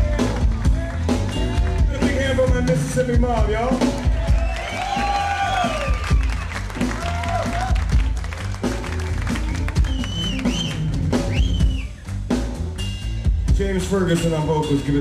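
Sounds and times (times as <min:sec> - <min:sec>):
blues band playing: 0:00.0 - 0:15.0.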